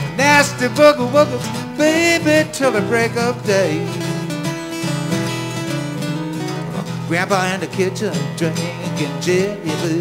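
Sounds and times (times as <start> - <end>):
acoustic guitars playing blues: 0.0 - 10.0.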